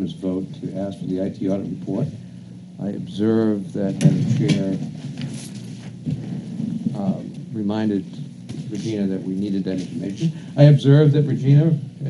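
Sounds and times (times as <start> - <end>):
person speaking: 6.9 - 12.0.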